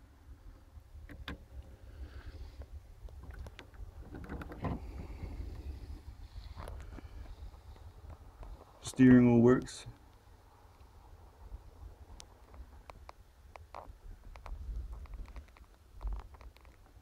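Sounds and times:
low steady rumble: 0.0s - 17.0s
small clicks and knocks on metal: 12.2s - 17.0s.

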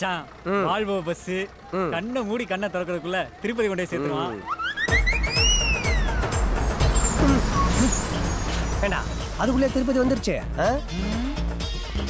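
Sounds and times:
bus engine rumble: 0.0s - 4.5s, 5.4s - 12.0s
gliding whistle-like tone: 4.5s - 8.2s.

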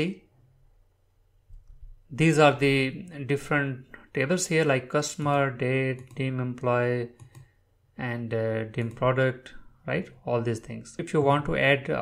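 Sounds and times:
man speaking: 0.0s - 0.3s, 2.1s - 7.2s, 7.9s - 12.0s.

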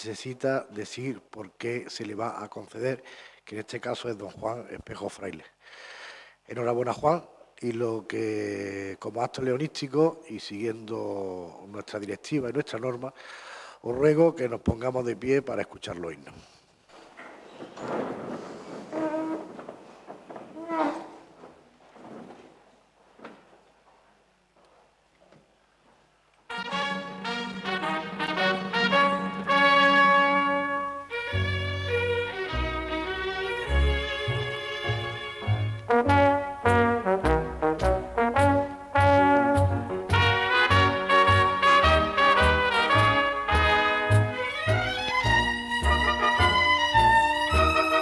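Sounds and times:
clothing rustle: 16.4s - 26.2s
chairs moving: 16.9s - 23.7s
chair leg squeaking on floor: 17.2s - 22.6s
brass band playing an anthem: 26.5s - 48.0s.

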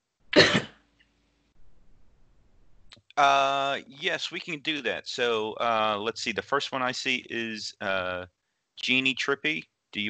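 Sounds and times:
person coughing: 0.4s - 0.7s.

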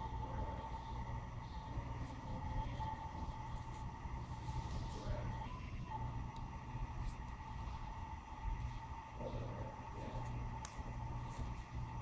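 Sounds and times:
low room hum: 0.0s - 12.0s
thin high whine: 0.0s - 12.0s.

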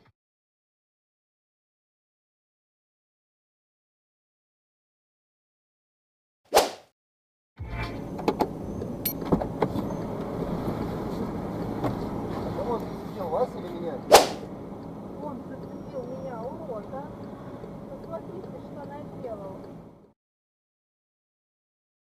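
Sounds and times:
sharp loud bangs: 14.1s - 14.4s.

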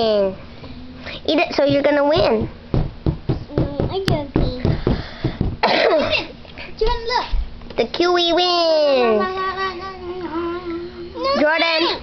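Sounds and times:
young child's voice: 6.1s - 12.0s.

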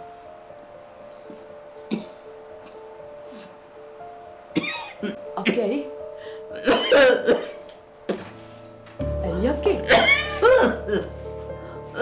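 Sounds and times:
soft background music: 0.0s - 12.0s
woman coughing: 4.6s - 5.8s, 6.6s - 7.6s, 9.8s - 11.1s.

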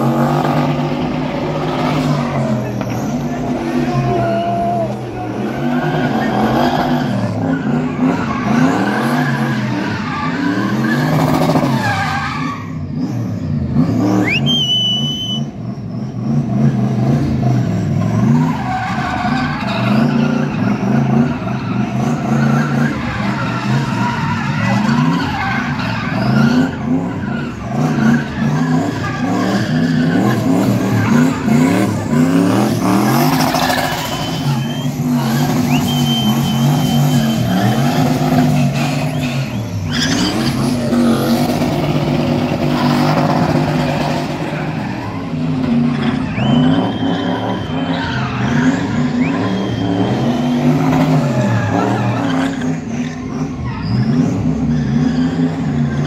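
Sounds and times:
car engine revving high: 0.0s - 56.0s
tyre squeals: 1.4s - 16.4s, 18.0s - 56.0s.

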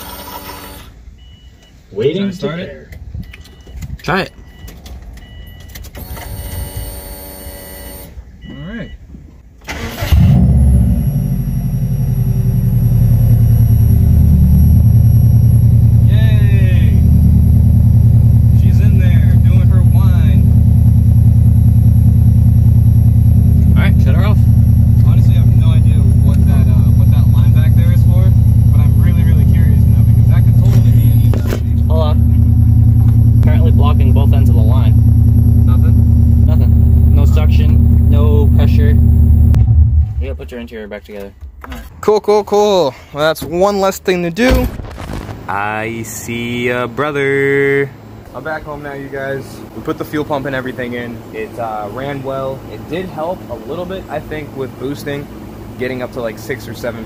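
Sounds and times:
car engine starting and idling: 2.9s - 6.8s, 7.6s - 57.0s
brief whine: 10.0s - 16.1s, 35.7s - 40.2s.

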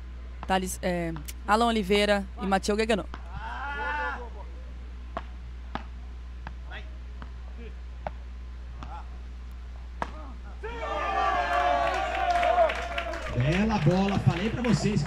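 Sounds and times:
rackets striking ball: 5.1s - 6.6s, 9.9s - 10.4s.

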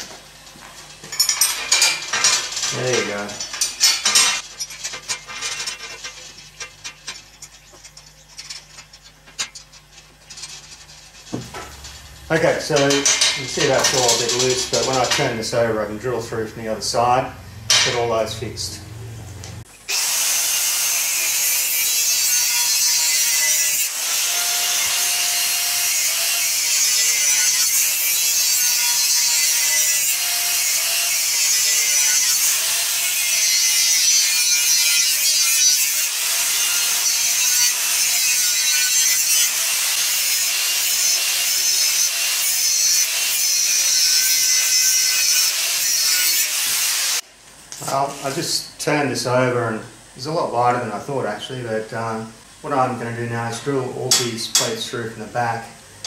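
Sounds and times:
angle grinder cutting steel: 11.4s - 15.9s, 19.9s - 47.2s.

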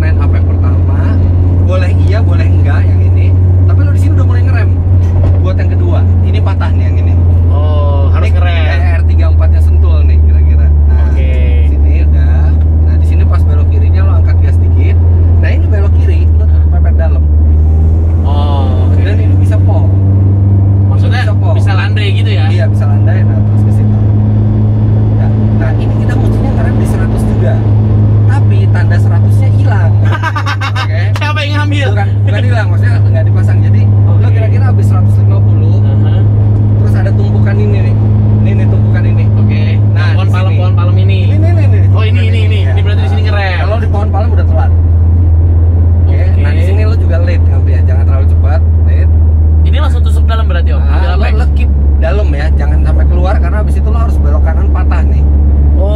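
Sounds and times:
car engine droning: 0.0s - 55.9s.

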